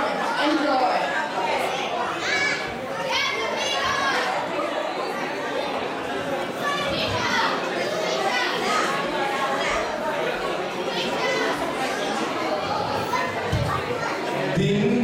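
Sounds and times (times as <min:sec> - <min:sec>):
audience chatter in a large hall: 0:00.0 - 0:15.0
children calling out: 0:01.6 - 0:04.6, 0:06.5 - 0:14.5.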